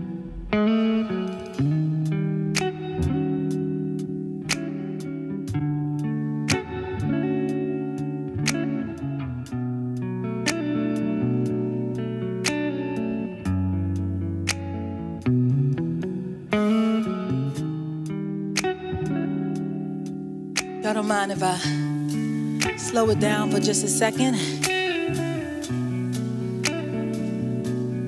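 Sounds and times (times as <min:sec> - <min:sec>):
guitar playing held chords: 0:00.0 - 0:28.0.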